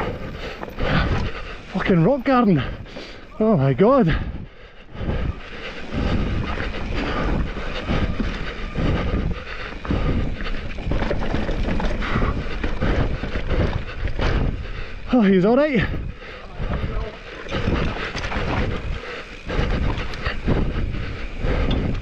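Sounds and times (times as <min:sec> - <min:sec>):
wind rush on microphone: 0:00.0 - 0:01.9, 0:04.1 - 0:22.0
bike tyres rolling and skidding on dirt: 0:00.0 - 0:22.0
bike knocks and rattles: 0:05.3 - 0:14.7, 0:15.4 - 0:22.0.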